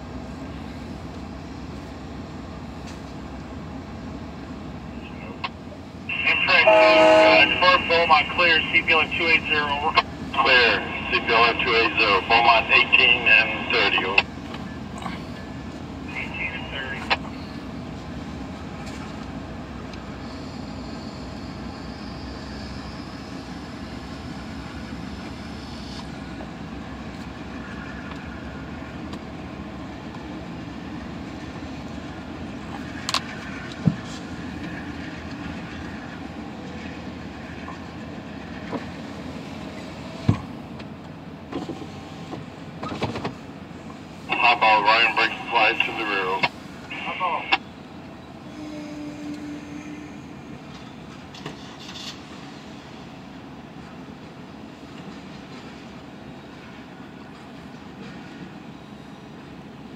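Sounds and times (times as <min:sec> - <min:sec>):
train rumbling on rails: 0:00.0 - 0:59.9.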